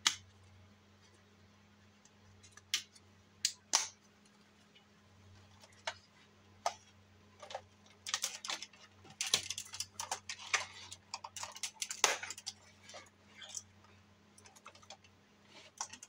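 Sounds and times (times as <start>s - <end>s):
faint steady low hum: 0.0s - 16.0s
plastic toy clicking and rattling: 7.4s - 13.7s, 14.4s - 16.0s.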